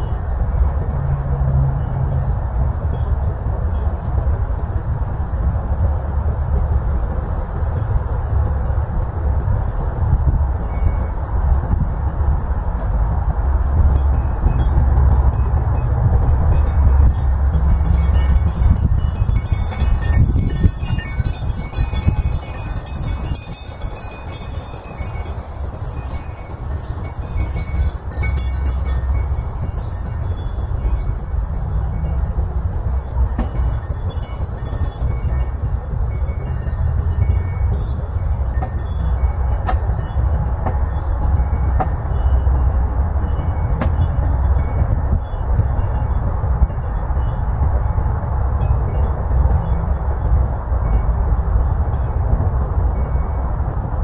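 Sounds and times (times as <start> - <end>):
wind chimes tinkling: 0.0 - 5.4, 7.4 - 53.9
wind rumble on microphone: 0.0 - 54.0.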